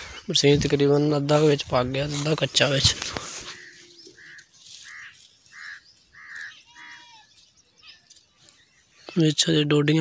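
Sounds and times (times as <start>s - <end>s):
bird calling short calls: 3.4s - 8.1s.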